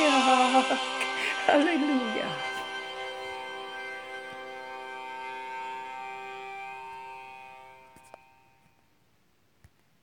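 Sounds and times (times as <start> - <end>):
sustained song chord: 0.0 - 8.6.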